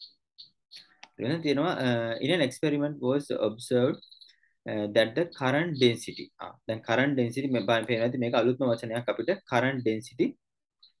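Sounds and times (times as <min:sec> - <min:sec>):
man speaking: 0:01.2 - 0:10.5.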